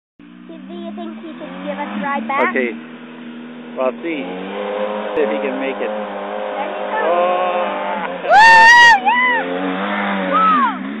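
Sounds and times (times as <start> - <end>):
quad engine droning: 0.2 - 11.0
loud high-pitched shouts: 6.8 - 9.6, 10.3 - 10.8.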